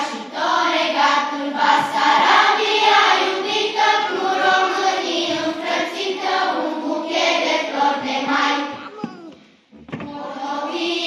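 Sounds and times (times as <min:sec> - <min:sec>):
children's choir singing: 0:00.0 - 0:09.2, 0:09.8 - 0:11.0.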